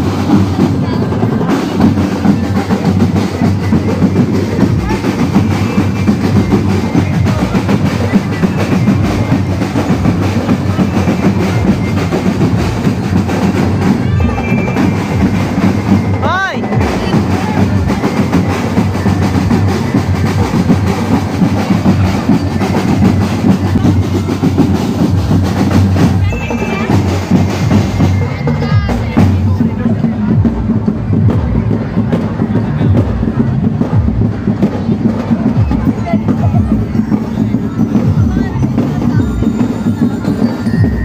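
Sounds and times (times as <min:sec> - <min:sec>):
marching snare and bass drums: 0:00.0 - 0:41.0.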